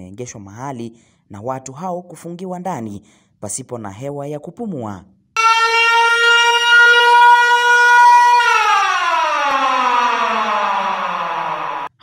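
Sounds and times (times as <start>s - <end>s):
emergency vehicle siren: 5.4s - 12.0s.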